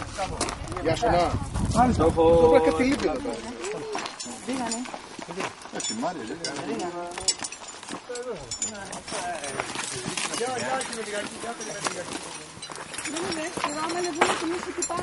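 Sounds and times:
footsteps on stony trail: 0.0s - 15.0s
indistinct chatter: 0.0s - 15.0s.

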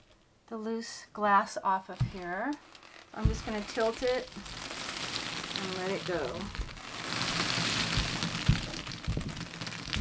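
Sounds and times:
dull knocks: 7.8s - 10.0s.

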